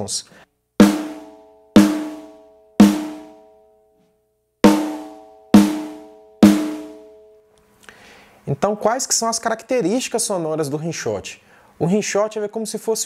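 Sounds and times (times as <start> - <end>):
snare drum rimshots: 0.8 - 3.3.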